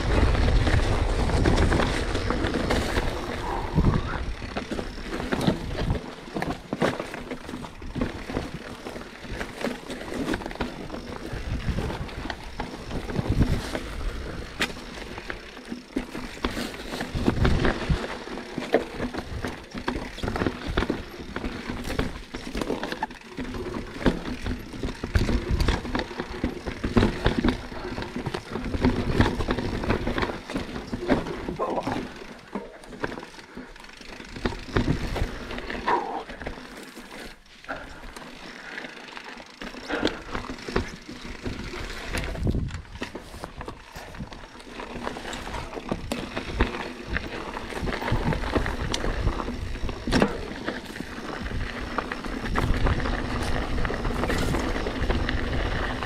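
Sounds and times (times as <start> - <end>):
bike knocking and rattling: 0.0 - 56.0
tyres crunching over loose stones: 0.0 - 56.0.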